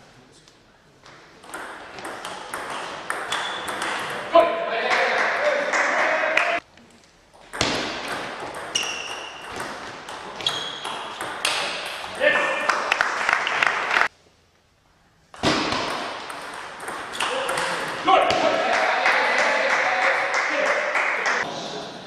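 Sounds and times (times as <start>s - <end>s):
table tennis balls clicking: 1.4s - 4.3s, 7.4s - 12.2s, 15.4s - 18.1s.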